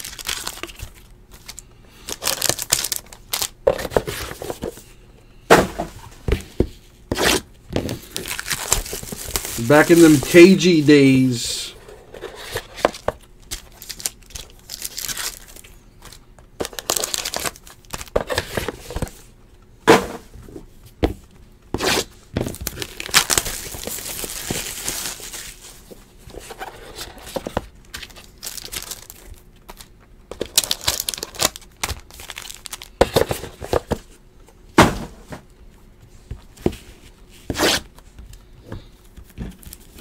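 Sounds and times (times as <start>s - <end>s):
plastic wrap crinkling: 0.0s - 3.6s, 7.9s - 11.2s, 13.2s - 18.2s, 22.5s - 25.9s, 28.0s - 33.2s
plastic wrap tearing: 0.0s - 3.6s, 8.0s - 10.6s, 13.4s - 15.6s, 16.6s - 18.1s, 22.6s - 25.6s, 28.0s - 32.9s.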